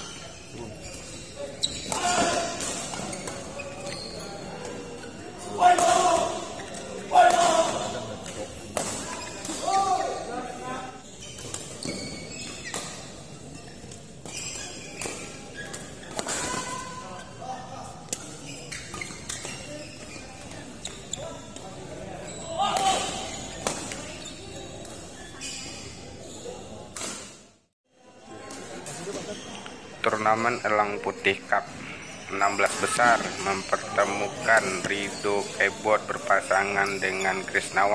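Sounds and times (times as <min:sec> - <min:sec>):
shoes squeaking on court: 0:00.0 - 0:07.0, 0:07.7 - 0:10.3, 0:11.0 - 0:27.4, 0:28.6 - 0:31.0, 0:31.6 - 0:37.9
players shouting: 0:05.5 - 0:06.5.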